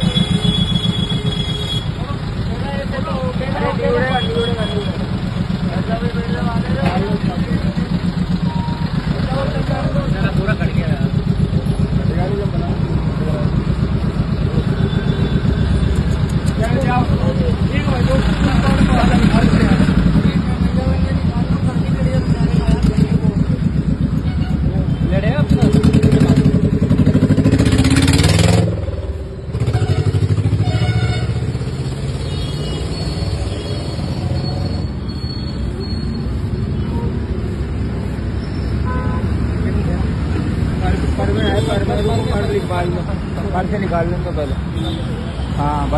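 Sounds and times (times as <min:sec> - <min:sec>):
vehicle engine idling: 0:00.0 - 0:32.5
street traffic: 0:00.0 - 0:45.9
people talking: 0:02.0 - 0:11.2, 0:11.9 - 0:13.7, 0:16.5 - 0:23.7, 0:24.7 - 0:27.1, 0:40.8 - 0:45.0.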